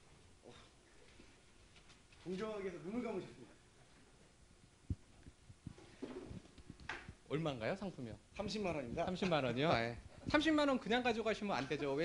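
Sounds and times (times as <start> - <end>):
microphone handling bumps: 4.9 - 7.2.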